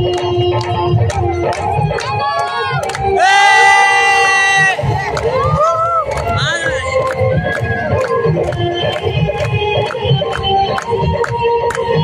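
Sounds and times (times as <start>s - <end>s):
dance song with low beat: 0.0s - 12.0s
crowd cheering and whooping: 2.0s - 8.1s.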